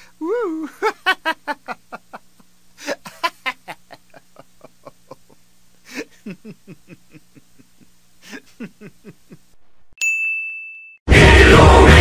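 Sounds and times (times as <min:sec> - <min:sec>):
burst of laughter: 0:00.7 - 0:09.4
bright bell ding: 0:10.0 - 0:11.0.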